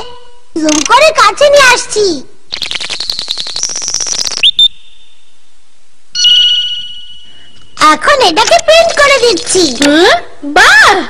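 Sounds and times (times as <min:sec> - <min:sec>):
fast electronic ticking rising tone: 0:02.5 - 0:05.0
steady electronic beep: 0:06.2 - 0:07.8.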